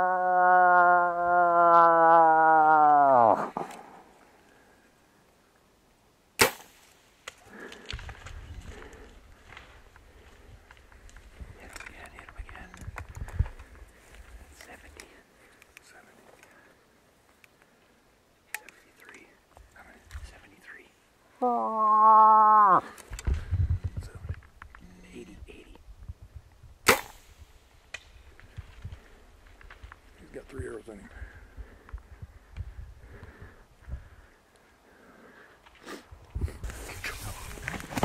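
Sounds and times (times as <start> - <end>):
brush crackling: 6.4 - 18.0, 26.9 - 32.6
moose call: 21.4 - 22.9
bowstring release snap: 26.8 - 27.3.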